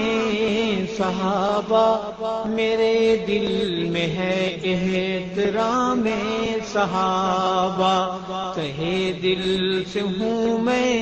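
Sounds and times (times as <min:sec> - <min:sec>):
man chanting devotional song: 0:00.0 - 0:11.0.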